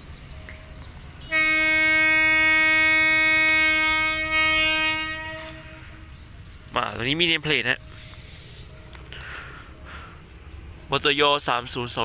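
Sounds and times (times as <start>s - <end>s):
train horn long steady note: 1.2s - 6.2s.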